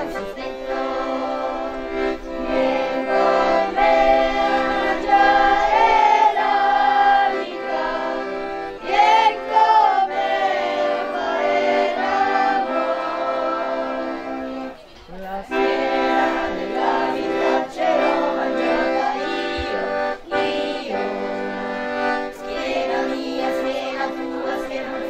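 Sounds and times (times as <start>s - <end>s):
accordion chords: 0.0s - 25.0s
group of voices singing: 0.0s - 25.0s.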